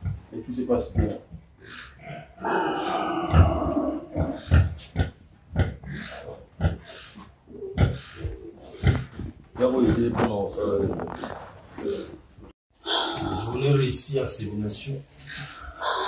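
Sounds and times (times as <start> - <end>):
pigs grunting: 0.0 - 16.0
pig long rough call: 1.6 - 5.0, 12.8 - 13.8, 15.2 - 16.0.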